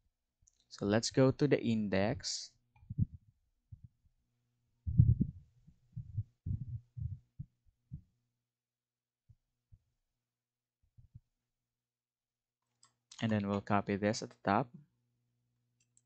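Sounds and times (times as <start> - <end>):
low dull thumps: 2.8 - 4.0, 4.8 - 8.1
faint low hum: 4.8 - 7.5.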